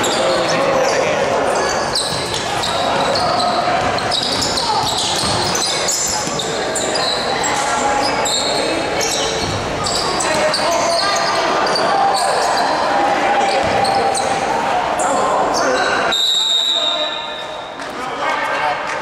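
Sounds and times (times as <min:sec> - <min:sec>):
sneakers squeaking on court: 0:00.0 - 0:12.8, 0:13.4 - 0:14.5
voices chattering: 0:00.0 - 0:19.0
basketball bouncing: 0:02.0 - 0:06.5, 0:13.5 - 0:14.3.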